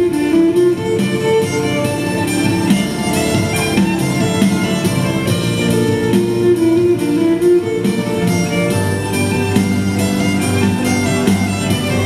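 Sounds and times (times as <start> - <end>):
electric violin melody: 0.0 - 12.0
electronic backing track with beat: 0.0 - 12.0.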